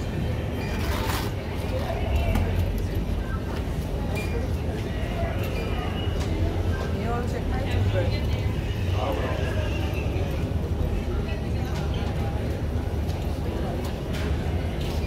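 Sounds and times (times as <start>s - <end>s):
people talking: 0.0s - 15.0s
backpack clicks and rustles: 0.8s - 2.5s.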